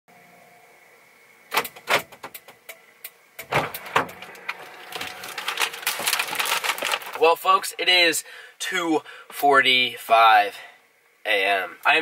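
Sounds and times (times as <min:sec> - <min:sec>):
faint steady hum: 0:00.1 - 0:12.0
bag rustling: 0:04.2 - 0:07.3.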